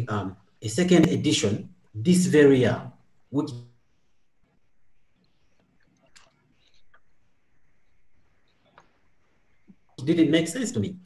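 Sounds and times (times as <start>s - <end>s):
soft mouth clicks: 5.2s - 7.2s.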